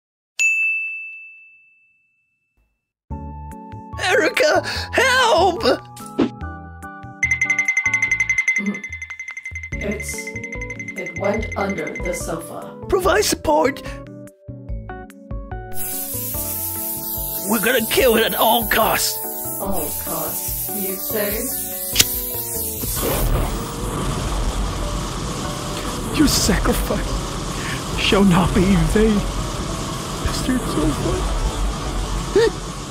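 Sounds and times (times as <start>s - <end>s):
bright bell ding: 0.4s - 2.5s, 7.2s - 12.5s
lighter clicking: 19.4s - 23.0s
flame whooshing with rumble: 22.7s - 32.9s.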